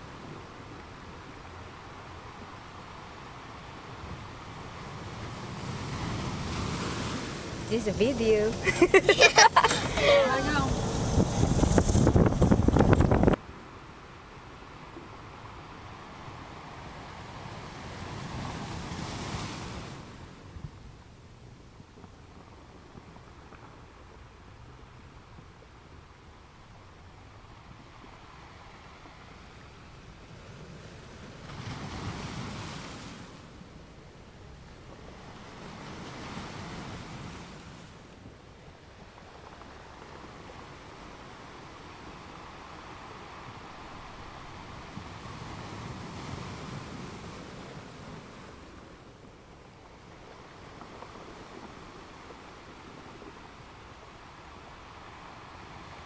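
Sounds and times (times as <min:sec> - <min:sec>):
faint steady wind rush: 0:00.0 - 0:56.0
wind buffeting microphone: 0:03.9 - 0:13.4.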